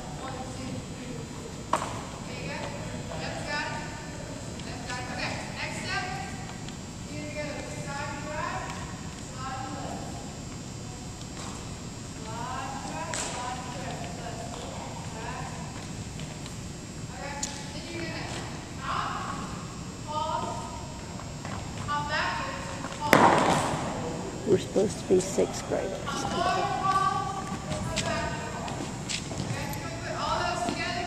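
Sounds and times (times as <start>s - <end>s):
voices: 0.0s - 16.0s, 16.8s - 31.0s.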